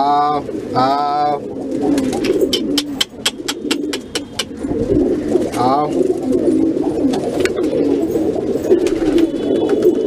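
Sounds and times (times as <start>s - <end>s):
pigeons cooing: 0.0s - 10.0s
sharp clicks: 2.5s - 4.5s.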